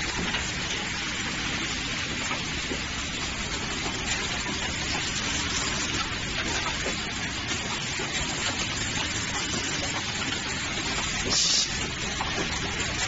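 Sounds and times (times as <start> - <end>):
machinery hiss: 11.2 - 11.8.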